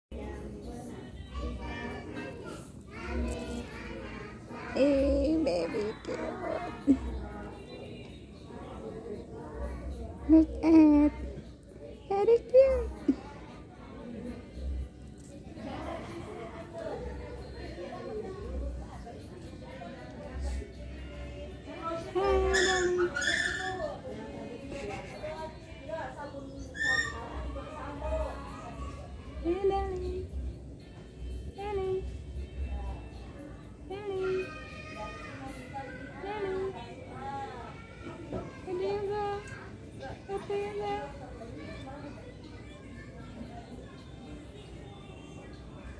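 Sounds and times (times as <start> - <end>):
children talking and playing: 0.1 - 45.9.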